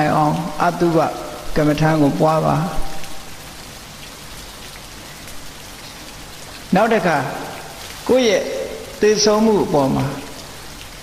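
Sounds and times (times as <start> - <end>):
falling water hissing: 0.0 - 11.0.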